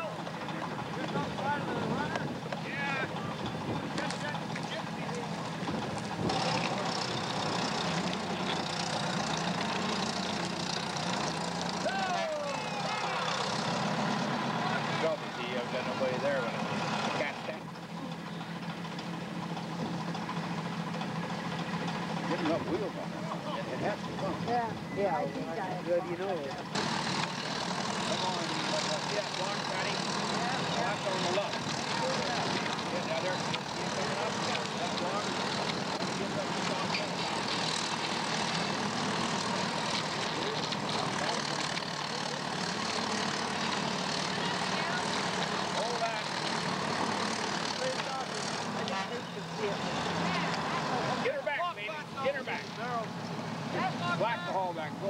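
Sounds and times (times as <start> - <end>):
steam engine running: 0.0 - 24.9, 26.6 - 53.0
voices: 0.0 - 55.0.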